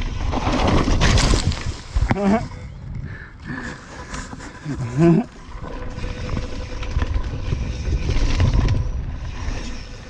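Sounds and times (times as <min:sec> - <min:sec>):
tyres rolling over dirt: 0:00.0 - 0:02.2
wind rumble on microphone: 0:00.0 - 0:10.0
bike rattling ticks: 0:02.9 - 0:10.0.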